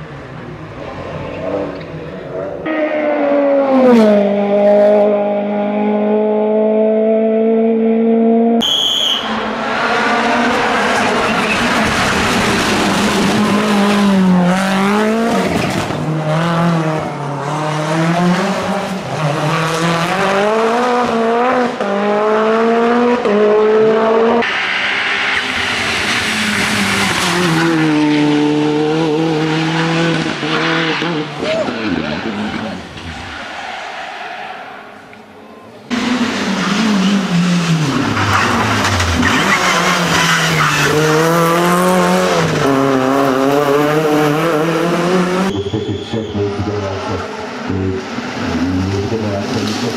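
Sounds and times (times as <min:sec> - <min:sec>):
race car engines revving: 0:00.0 - 0:49.9.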